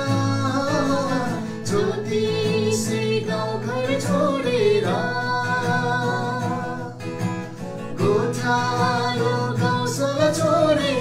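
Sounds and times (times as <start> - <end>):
man and woman singing a carol: 0.0 - 7.2, 7.8 - 11.0
strummed acoustic guitar: 0.0 - 11.0.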